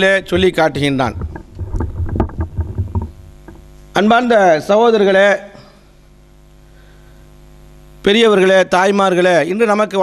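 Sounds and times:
microphone handling bumps: 0:00.0 - 0:04.0
electrical hum: 0:00.0 - 0:10.0.

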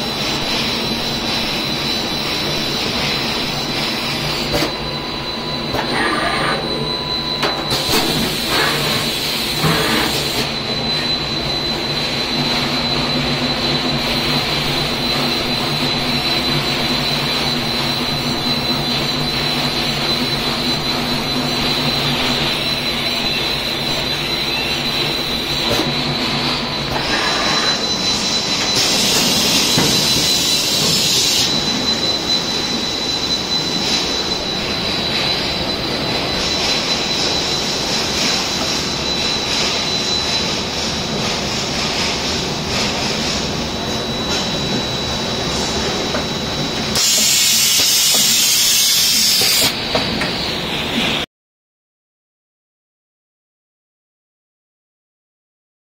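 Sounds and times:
high-pitched machine whine: 0:00.0 - 0:51.3
loud hiss: 0:46.9 - 0:49.8.

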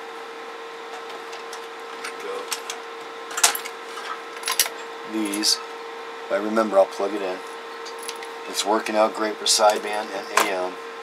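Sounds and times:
electrical hum and hiss: 0:00.0 - 0:11.0.

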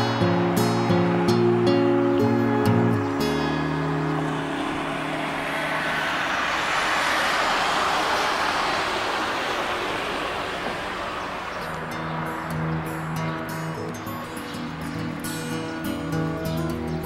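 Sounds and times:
road traffic passing: 0:00.0 - 0:17.0
soft background music: 0:00.1 - 0:06.4.

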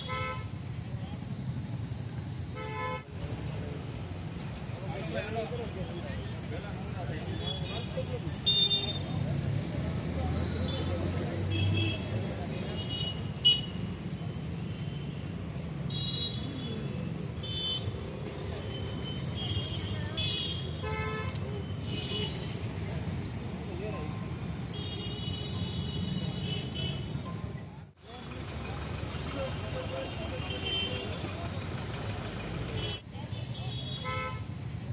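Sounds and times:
rumble of passing vehicles: 0:00.0 - 0:34.9
people talking: 0:04.8 - 0:13.1, 0:18.3 - 0:20.6, 0:27.2 - 0:34.2.

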